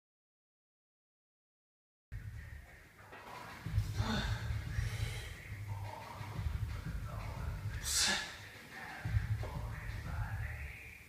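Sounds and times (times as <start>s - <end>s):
person breathing hard: 3.7s - 5.5s, 7.8s - 8.6s
low steady rumble: 3.7s - 8.0s, 9.0s - 10.8s.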